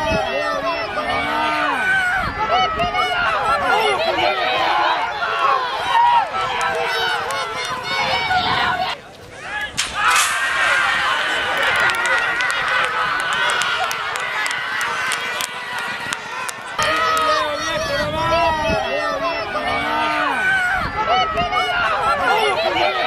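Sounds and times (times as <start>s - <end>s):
crowd shouting and cheering: 0.0s - 23.0s
sharp clicks: 9.6s - 17.3s.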